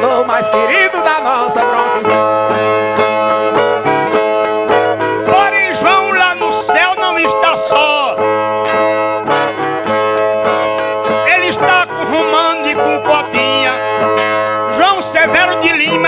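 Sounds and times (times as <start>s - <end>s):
plucked and strummed string instruments: 0.0s - 7.2s, 8.2s - 16.0s.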